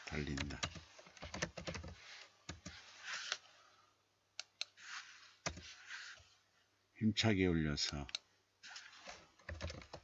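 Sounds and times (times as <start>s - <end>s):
computer keyboard typing: 0.0s - 2.8s, 9.4s - 10.0s.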